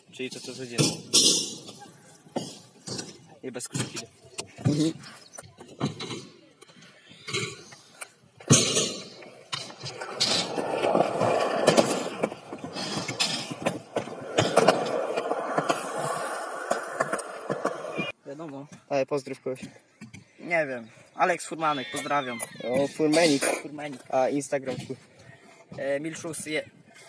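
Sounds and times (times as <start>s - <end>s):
scooter wheels rolling on concrete: 0.3s - 18.2s.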